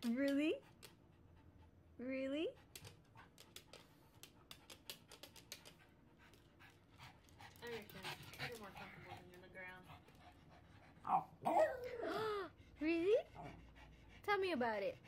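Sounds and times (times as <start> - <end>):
dogs panting: 0.2 - 15.0.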